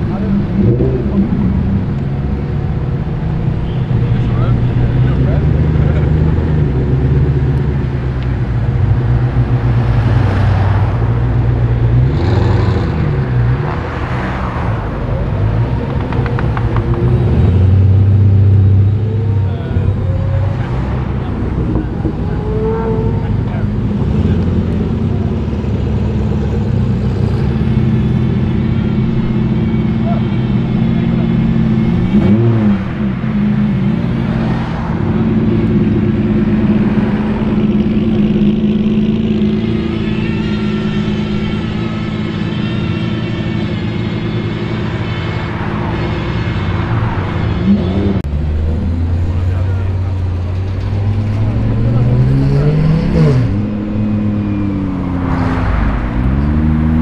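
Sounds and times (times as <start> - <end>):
engine revving: 0.0 - 57.0
sports car engines driving off: 0.0 - 57.0.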